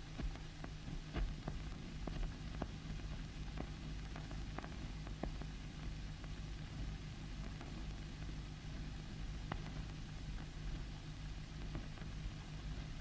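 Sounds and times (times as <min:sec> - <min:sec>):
low hum and hiss: 0:00.0 - 0:13.0.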